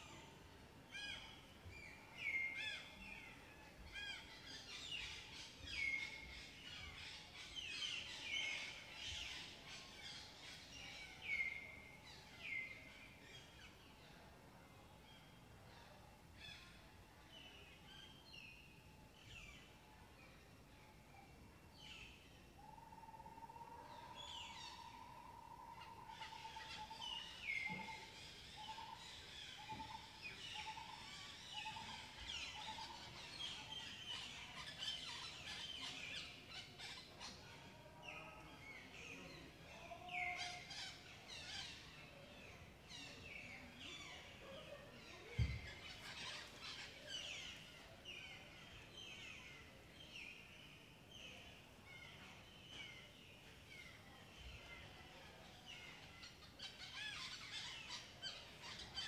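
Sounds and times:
forest birds chirping: 0.0s - 59.0s.

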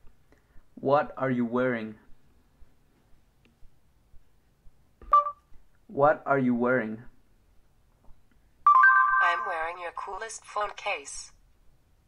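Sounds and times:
two-note electronic beep: 5.1s - 5.4s, 8.7s - 9.5s.

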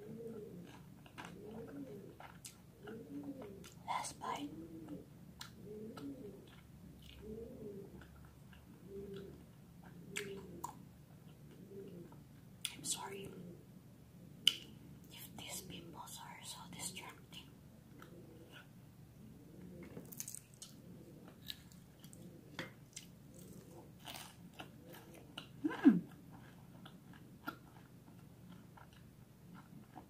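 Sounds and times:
crunchy chewing: 0.0s - 3.8s, 4.6s - 12.2s, 19.5s - 30.0s
person humming: 25.6s - 26.1s.

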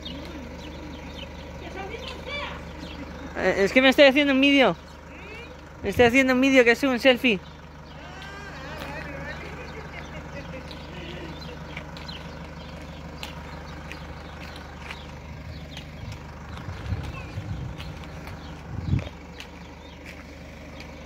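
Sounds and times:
steady low hum: 0.0s - 21.0s
low rumbles on microphone: 9.0s - 21.0s.

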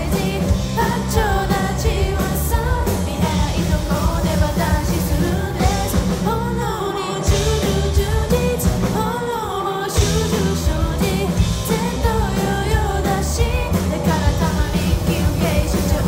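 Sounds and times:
bass guitar: 0.0s - 9.3s, 9.9s - 16.0s
drum kit: 0.0s - 16.0s
electric guitars: 0.0s - 16.0s
woman singing: 0.0s - 16.0s.

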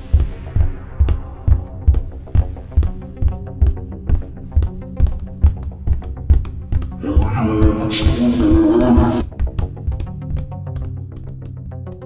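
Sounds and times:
music with drum beat: 0.0s - 12.0s
monster roar: 7.0s - 9.2s.

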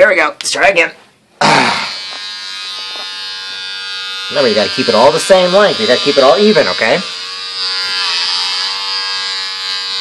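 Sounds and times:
electric hair clippers buzzing: 1.7s - 10.0s.

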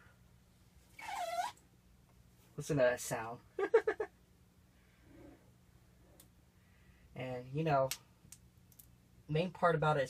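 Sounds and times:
sticker squeaking on glossy surface: 1.0s - 1.6s.

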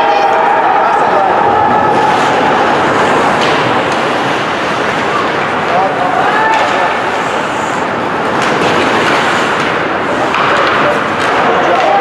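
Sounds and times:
skates on ice: 1.0s - 12.0s
hockey sticks clicking on puck: 1.9s - 12.0s.

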